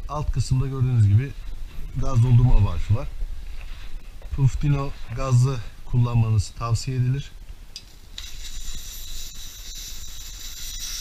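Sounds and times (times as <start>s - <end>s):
gas hissing from can: 8.2s - 11.0s.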